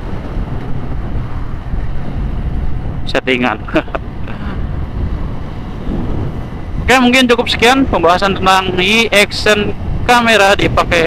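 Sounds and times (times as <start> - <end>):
road noise: 0.0 - 11.0
wind rumble on microphone: 0.0 - 11.0.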